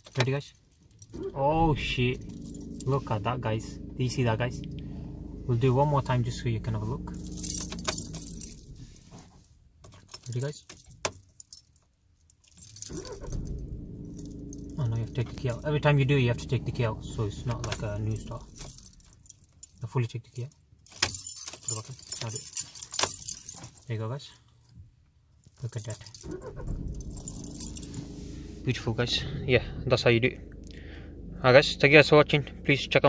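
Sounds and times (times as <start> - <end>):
diesel engine starting and idling: 1.0 - 9.4, 12.7 - 19.4, 26.2 - 33.0
keys jangling: 7.1 - 8.8, 9.8 - 14.8, 17.5 - 24.0, 25.6 - 28.2.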